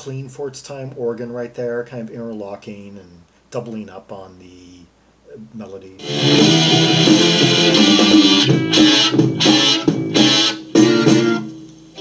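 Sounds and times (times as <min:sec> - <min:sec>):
psychedelic rock band playing: 0:06.0 - 0:12.0.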